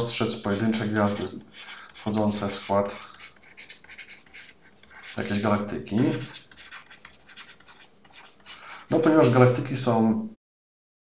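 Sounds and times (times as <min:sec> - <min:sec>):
stylus scratching on a tablet: 0:00.0 - 0:09.6.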